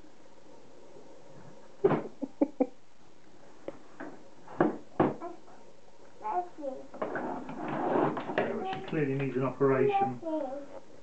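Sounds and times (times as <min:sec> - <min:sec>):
knock: 0:04.6 - 0:05.2
toddler babbling: 0:05.2 - 0:05.5, 0:06.2 - 0:06.9, 0:09.9 - 0:10.7.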